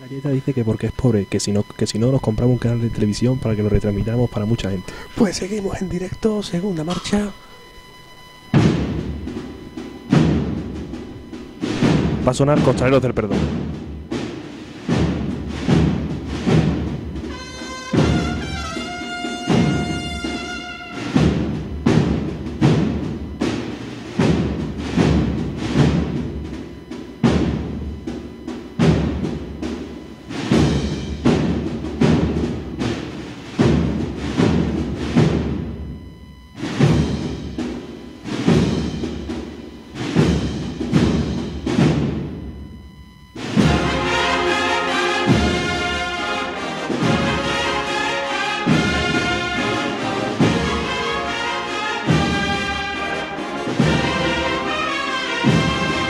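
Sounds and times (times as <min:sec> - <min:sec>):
drums beating slow rhythm: 0:00.0 - 0:56.0
brass band playing march: 0:08.6 - 0:26.4, 0:43.4 - 0:56.0.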